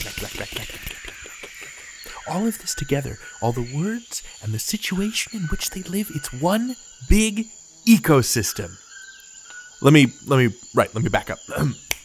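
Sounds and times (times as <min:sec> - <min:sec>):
high insect chirring: 0:00.0 - 0:12.0.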